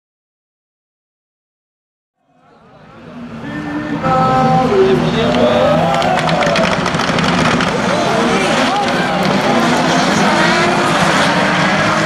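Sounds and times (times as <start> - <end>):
race car engines running: 2.5 - 12.0
rapid clicking or crackling: 5.9 - 9.5.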